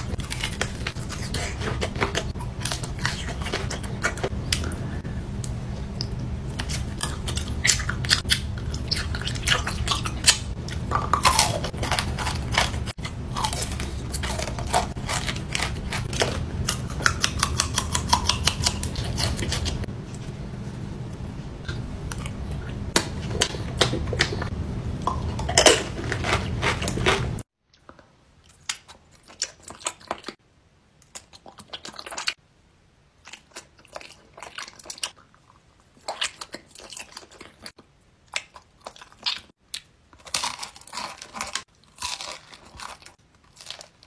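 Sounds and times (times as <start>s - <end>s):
crunching and chewing: 0.0s - 19.9s, 21.7s - 30.4s, 33.2s - 44.0s
low steady hum: 0.0s - 31.2s.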